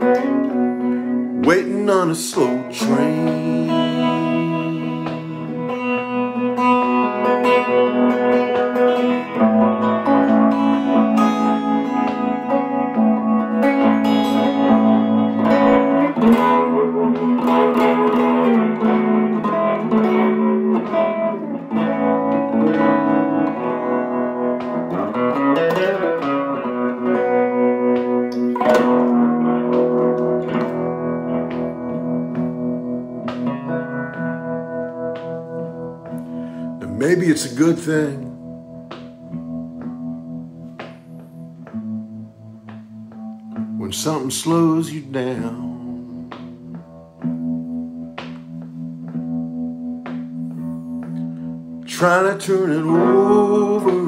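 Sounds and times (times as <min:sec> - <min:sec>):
guitar melody with ringing notes: 0:00.0 - 0:54.0.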